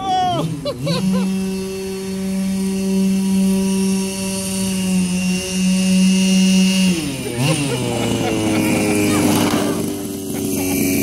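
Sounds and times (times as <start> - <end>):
toy buggy engine high revs: 0.0 - 11.0.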